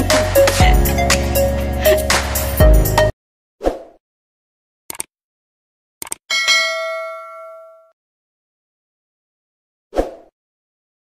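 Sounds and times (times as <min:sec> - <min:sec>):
quick clicks: 0:04.9 - 0:05.1, 0:06.0 - 0:06.2
notification bell ding: 0:06.3 - 0:07.9.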